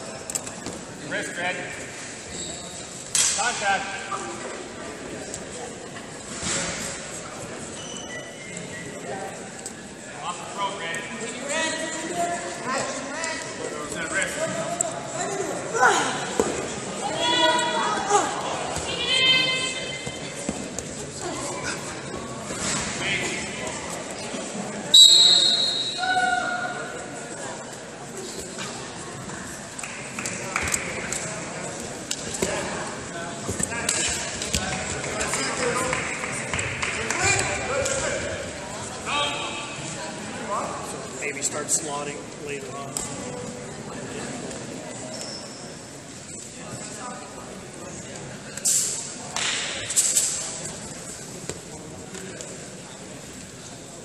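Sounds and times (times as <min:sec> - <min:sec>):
voices calling out in hall: 0:07.4 - 0:28.0
voices calling out in echoing hall: 0:07.5 - 0:54.0.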